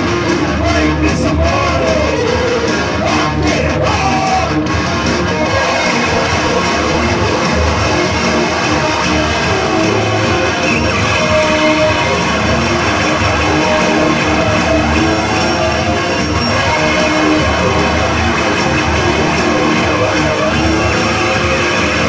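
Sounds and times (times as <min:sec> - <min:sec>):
loud live band music: 0:00.0 - 0:22.0.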